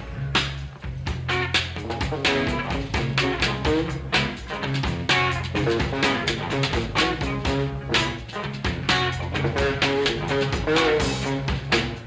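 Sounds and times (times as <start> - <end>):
bass guitar: 0.0 - 12.0
blues rock band playing: 0.0 - 12.0
guitar lines: 0.0 - 12.0
steady drum beat: 0.0 - 12.0.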